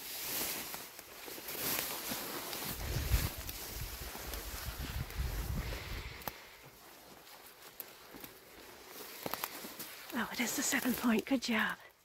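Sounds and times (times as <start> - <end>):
footsteps through dry weeds: 0.0 - 12.0
microphone handling rumble: 2.8 - 6.0
faint sharp clicks: 6.2 - 6.5.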